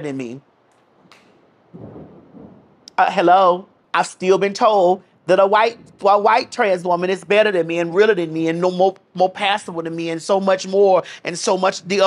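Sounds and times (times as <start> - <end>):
low muffled rumble: 1.7 - 2.9.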